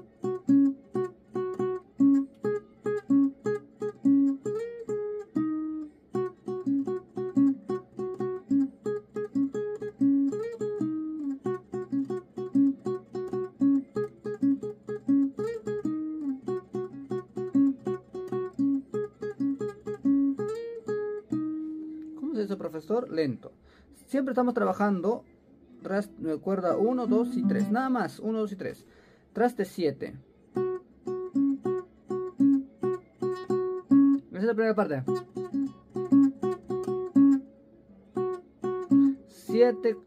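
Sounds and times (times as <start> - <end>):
classical guitar slow melody: 0.0 - 23.0, 25.6 - 28.6, 30.0 - 40.0.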